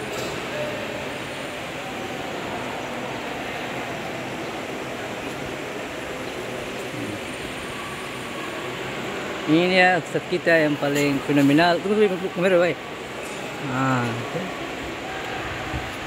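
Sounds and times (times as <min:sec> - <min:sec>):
indoor hall background noise: 0:00.0 - 0:16.0.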